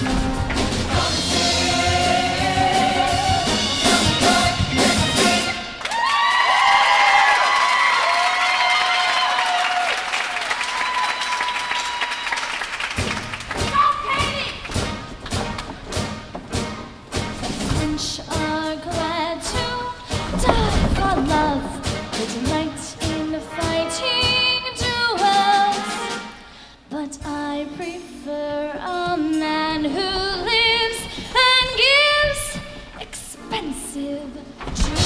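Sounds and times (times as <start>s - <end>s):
band drums: 0.0s - 5.8s, 12.8s - 26.5s
bass: 0.0s - 5.9s, 13.0s - 25.3s
choir singing: 0.7s - 4.9s.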